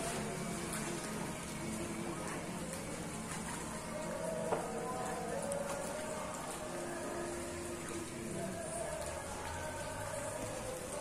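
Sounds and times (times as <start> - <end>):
seawater lapping at shore: 0.0 - 11.0.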